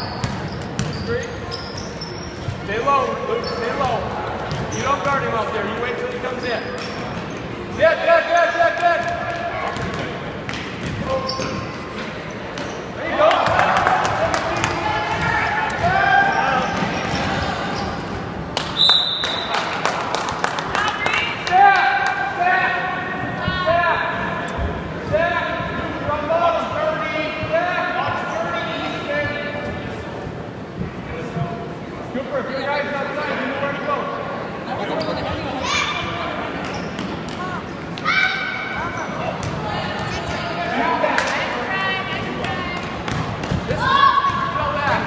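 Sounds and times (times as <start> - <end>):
basketball bouncing on gym floor: 0.0 - 1.0, 3.7 - 5.3, 9.0 - 11.5, 14.5 - 16.0, 42.8 - 45.0
referee's whistle blast: 18.8 - 19.5.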